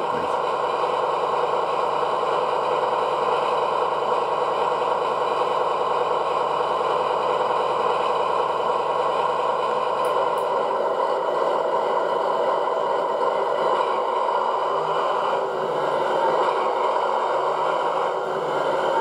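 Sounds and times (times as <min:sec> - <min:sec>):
model locomotive diesel engine sound: 0:00.0 - 0:19.0.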